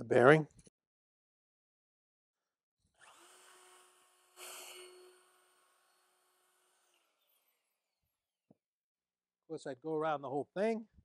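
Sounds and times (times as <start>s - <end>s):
router running: 3.0s - 7.5s
router cutting wood edge: 3.0s - 7.7s.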